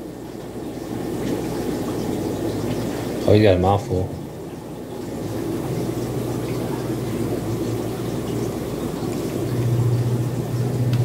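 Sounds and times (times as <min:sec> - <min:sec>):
aquarium water rushing: 0:00.0 - 0:11.0.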